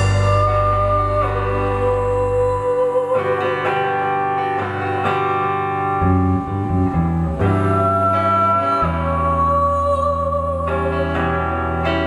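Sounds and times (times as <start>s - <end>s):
bass guitar: 0.0s - 12.0s
electric guitar: 0.0s - 12.0s.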